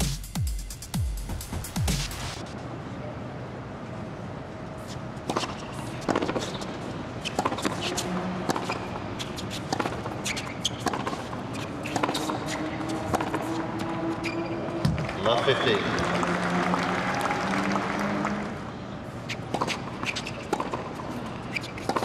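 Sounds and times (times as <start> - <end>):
background noise: 0.9 - 22.0
tennis ball struck by rackets: 5.2 - 13.6, 19.5 - 21.0, 21.6 - 22.0.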